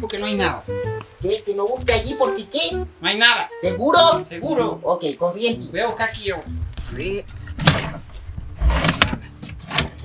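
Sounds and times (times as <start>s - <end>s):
drawers sliding on runners: 8.6s - 10.0s.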